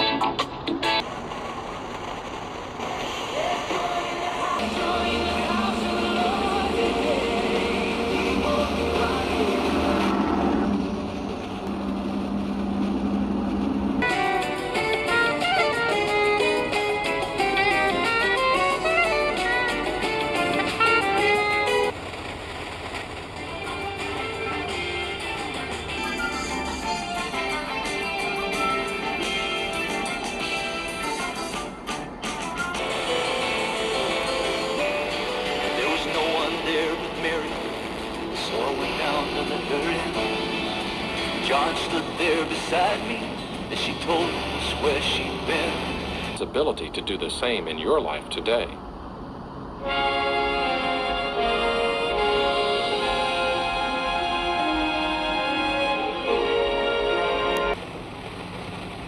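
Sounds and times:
radio static hiss: 0.9s - 16.7s, 32.7s - 48.8s
low hum: 4.2s - 59.0s
voice from radio broadcast: 41.4s - 48.8s.

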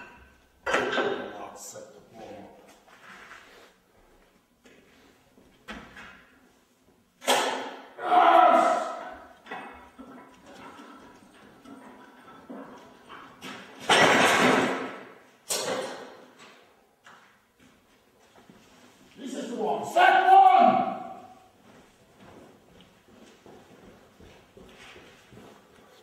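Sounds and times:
man shouting with effort: 7.9s - 9.3s, 19.4s - 21.4s.

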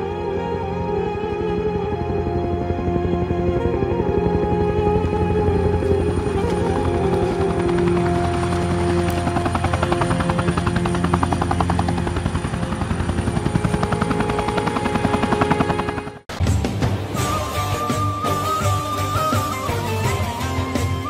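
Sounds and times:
background music: 0.0s - 21.0s
helicopter rotor beating: 0.0s - 21.0s.

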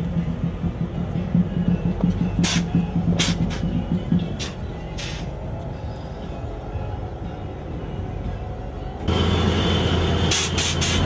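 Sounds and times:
music with pulsing bass line: 0.0s - 9.1s.

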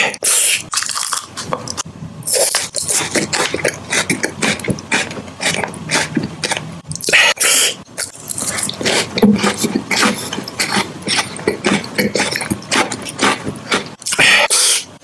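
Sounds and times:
crunching and chewing wafer: 0.5s - 7.3s, 8.0s - 14.7s
wet mouth noises: 1.4s - 15.0s.

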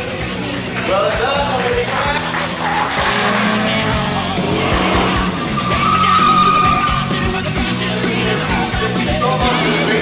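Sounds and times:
background music: 0.0s - 10.0s
racing car engine revving: 2.2s - 8.0s
tyres squealing: 2.6s - 7.6s.

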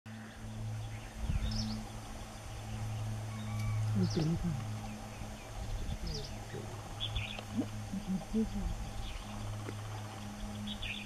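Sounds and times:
birds chirping and whistling: 0.1s - 11.0s
steady low hum: 0.1s - 11.0s.

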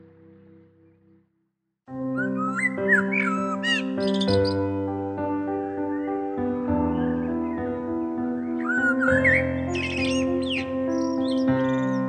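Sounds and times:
calm instrumental music: 1.9s - 12.0s
blackbird singing: 2.1s - 4.8s, 5.7s - 12.0s.

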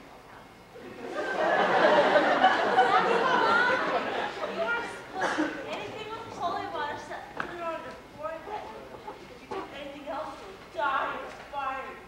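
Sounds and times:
people talking at once: 2.6s - 12.0s.

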